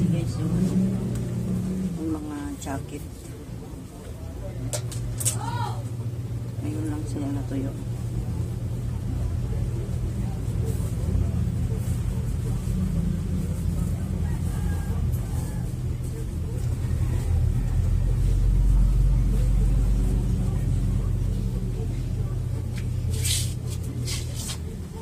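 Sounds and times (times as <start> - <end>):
low motor rumble: 0.0 - 25.0.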